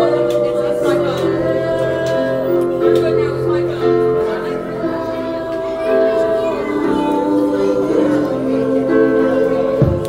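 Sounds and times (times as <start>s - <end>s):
choir singing in parts: 0.0s - 10.0s.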